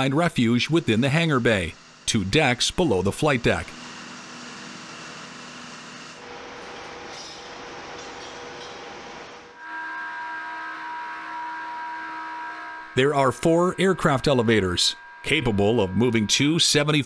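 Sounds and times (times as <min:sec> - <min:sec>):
machinery hum: 0:00.0 - 0:17.0
held steady tones: 0:09.5 - 0:17.0.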